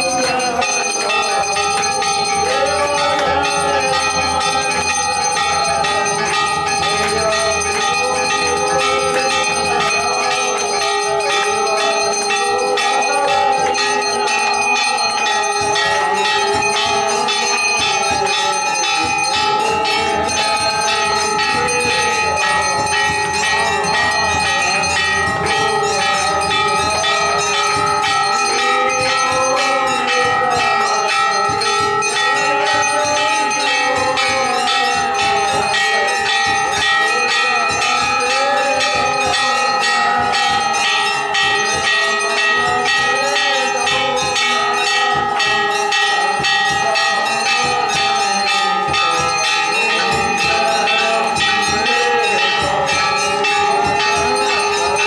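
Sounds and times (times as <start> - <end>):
temple bells clanging: 0.0 - 55.0.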